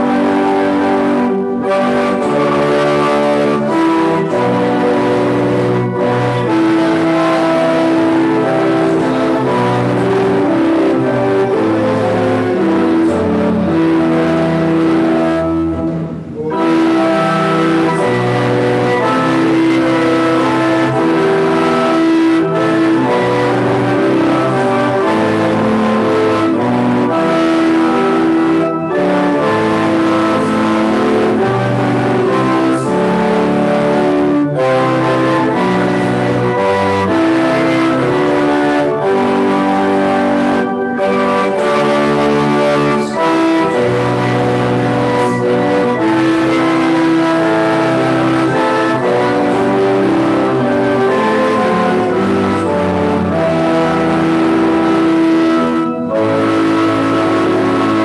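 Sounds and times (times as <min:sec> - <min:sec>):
organ playing slow chords: 0:00.0 - 0:58.0.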